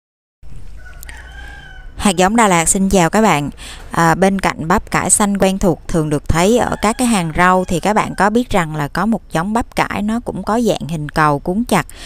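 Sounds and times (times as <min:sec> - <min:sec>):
rooster crowing: 0:00.7 - 0:02.2, 0:06.6 - 0:08.3.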